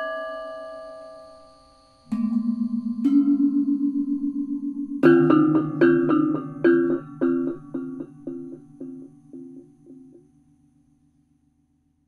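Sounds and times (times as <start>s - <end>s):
metallophones ringing: 0.0s - 10.2s
loud metallophone chord: 2.1s - 10.2s.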